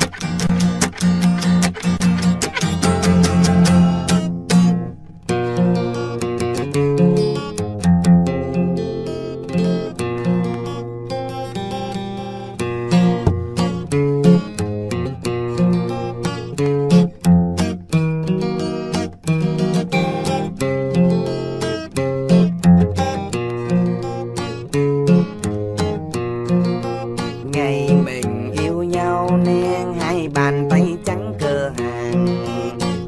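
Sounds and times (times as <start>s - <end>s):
acoustic guitar music: 0.0s - 33.0s.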